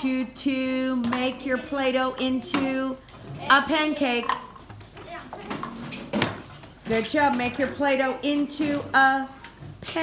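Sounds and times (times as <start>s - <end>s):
children chattering: 0.5s - 4.2s, 4.9s - 6.0s
woman speaking: 6.9s - 10.0s.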